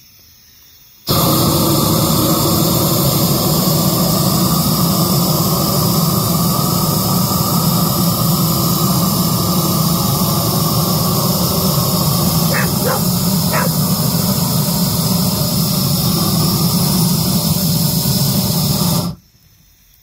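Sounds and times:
gas torch hissing: 1.1s - 19.2s.

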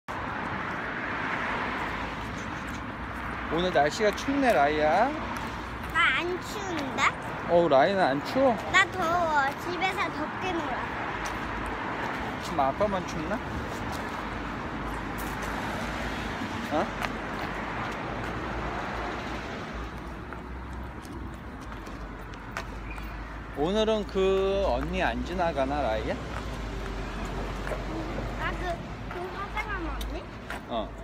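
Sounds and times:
traffic rushing: 0.1s - 31.0s.

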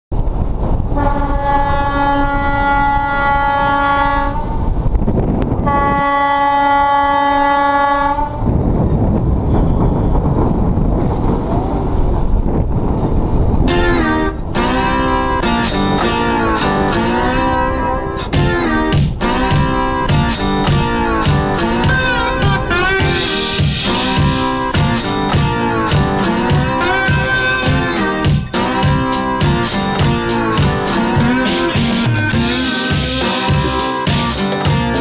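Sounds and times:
train horn blasts: 0.9s - 4.7s, 5.6s - 8.5s, 13.7s - 35.0s
low rumble: 8.3s - 33.8s
guitar music with sliding notes: 13.7s - 35.0s.

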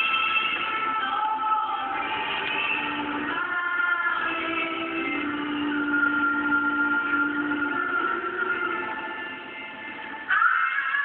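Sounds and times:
woman singing into a microphone: 0.0s - 11.0s.

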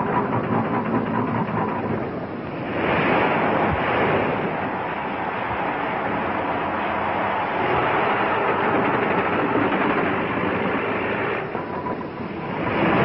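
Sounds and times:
rumbling roar of blasting: 0.0s - 13.0s.

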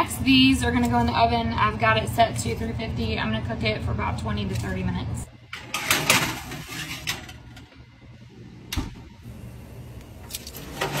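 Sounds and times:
metal pan sliding on oven rack: 5.6s - 7.6s.

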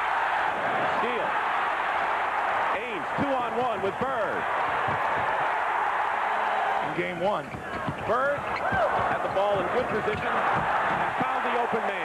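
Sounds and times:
crowd roar: 0.0s - 12.0s.

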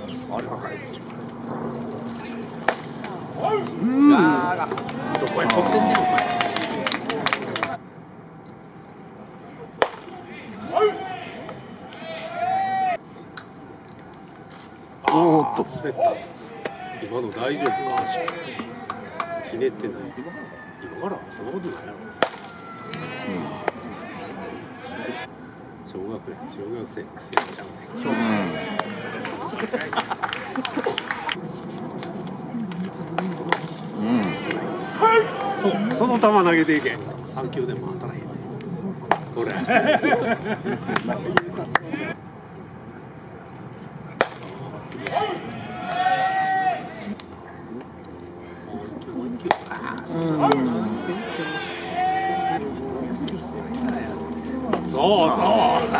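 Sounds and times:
man shouting a call: 10.3s - 13.0s, 15.9s - 19.6s, 34.3s - 36.2s, 50.3s - 52.6s
low chatter of voices: 14.7s - 55.9s.

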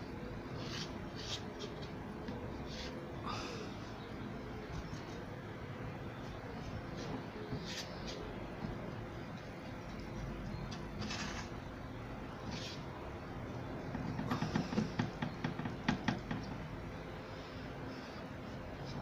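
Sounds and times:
fan hum: 0.0s - 19.0s.

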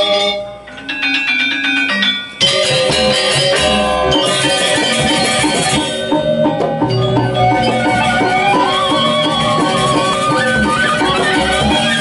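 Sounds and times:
gamelan metallophones ringing: 0.0s - 12.0s.

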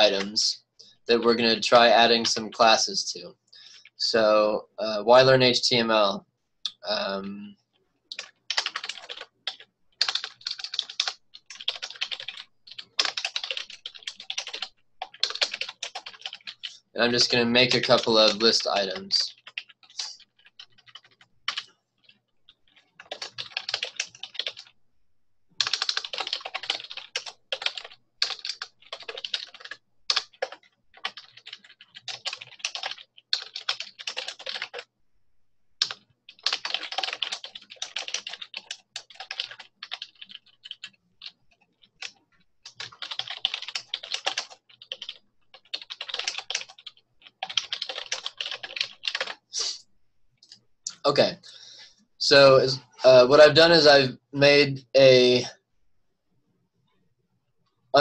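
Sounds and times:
typing on computer keyboard: 8.1s - 24.7s, 25.6s - 34.9s, 35.8s - 49.5s.

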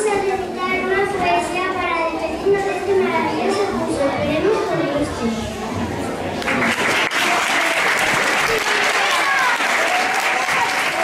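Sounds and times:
children's voices: 0.0s - 6.7s, 7.3s - 11.0s.

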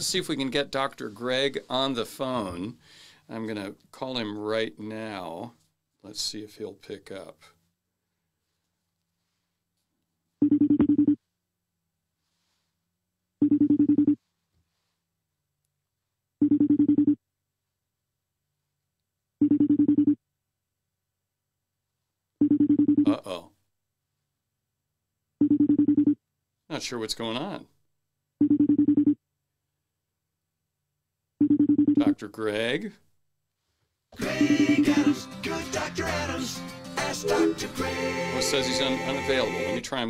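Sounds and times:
phone ringing tone: 37.0s - 39.2s.

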